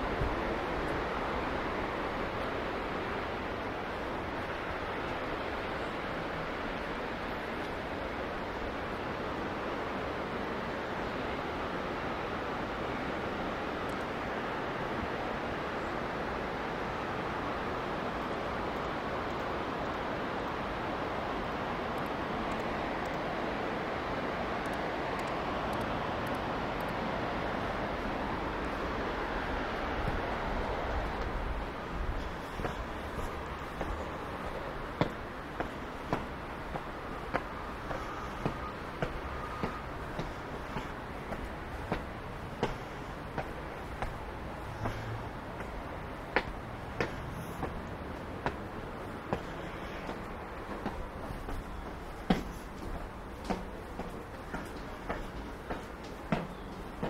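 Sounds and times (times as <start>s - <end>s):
wind buffeting microphone: 0.0s - 5.6s, 27.9s - 57.0s
distant city traffic: 0.0s - 57.0s
river rushing: 0.0s - 57.0s
footsteps on stone steps: 30.9s - 57.0s.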